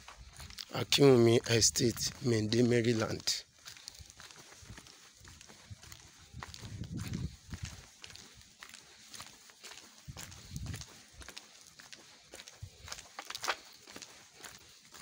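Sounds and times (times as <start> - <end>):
footsteps crunching on dirt: 0.0 - 15.0
low microphone rumbles: 5.7 - 7.8, 10.1 - 10.9.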